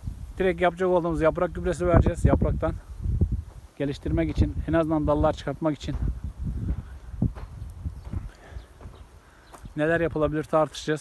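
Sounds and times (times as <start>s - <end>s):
low microphone rumble: 1.2s - 9.4s
footsteps on hard soil: 1.5s - 10.8s.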